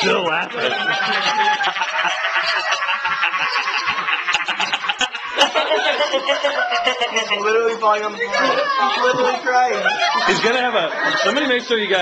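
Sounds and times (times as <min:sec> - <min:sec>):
man laughing hard: 0:00.6 - 0:07.7.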